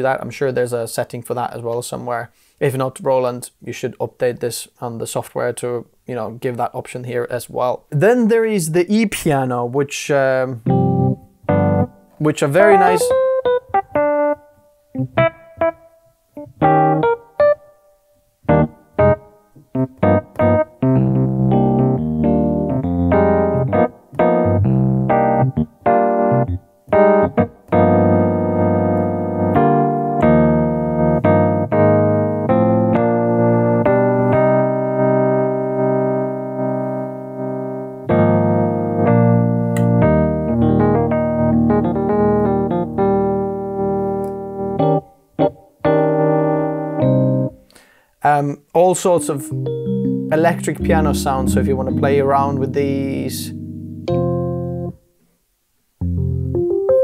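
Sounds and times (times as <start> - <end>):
electric piano playing: 10.6 - 47.7, 49.0 - 55.1, 56.0 - 57.0.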